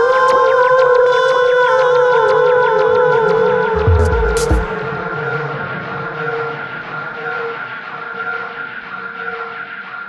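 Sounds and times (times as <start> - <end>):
sustained synth tones: 3.8 - 4.8.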